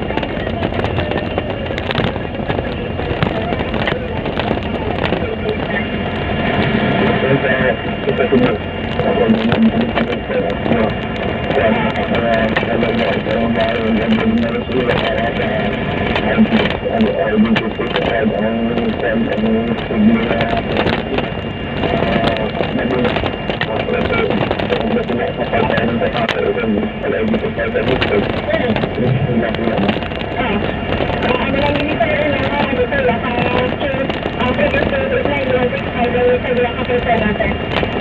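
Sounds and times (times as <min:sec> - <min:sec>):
background voices: 0:00.0 - 0:38.0
steady vehicle noise: 0:00.0 - 0:38.0
wind buffeting microphone: 0:00.0 - 0:38.0.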